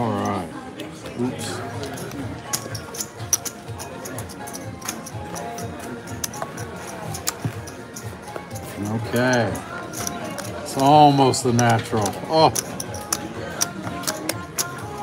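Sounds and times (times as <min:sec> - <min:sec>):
background music: 0:00.0 - 0:15.0
room chatter: 0:00.0 - 0:15.0
casino chips clicking: 0:01.8 - 0:15.0.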